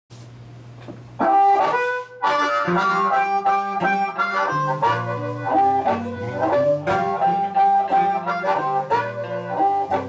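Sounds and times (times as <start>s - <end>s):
amplified blues harmonica: 1.2s - 10.0s.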